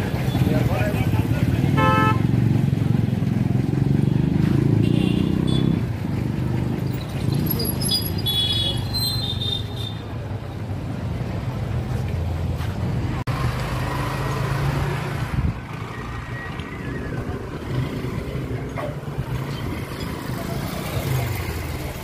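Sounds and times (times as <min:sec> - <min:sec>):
traffic engines rumbling: 0:00.0 - 0:22.0.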